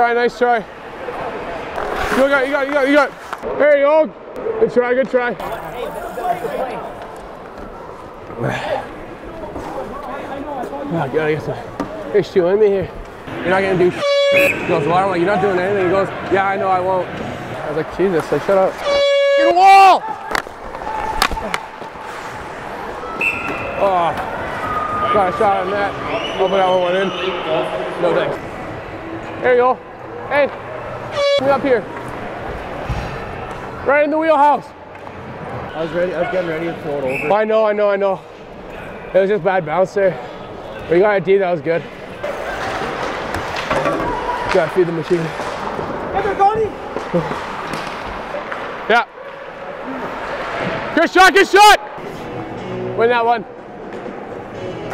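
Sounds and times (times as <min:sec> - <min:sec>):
skates scraping on ice: 0:01.6 - 0:03.5, 0:20.1 - 0:23.0
crowd murmur: 0:05.4 - 0:18.7, 0:41.8 - 0:51.0.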